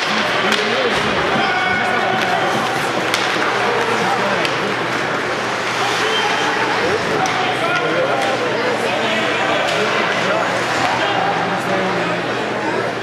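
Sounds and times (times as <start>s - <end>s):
hockey sticks and puck clacking: 0.0s - 11.4s
crowd babble: 0.0s - 13.0s.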